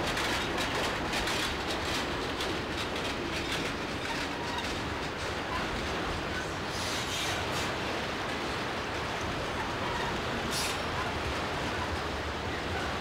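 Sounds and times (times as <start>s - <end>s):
train wheels clicking: 0.0s - 7.8s
train wheels rumbling on rail: 0.0s - 13.0s.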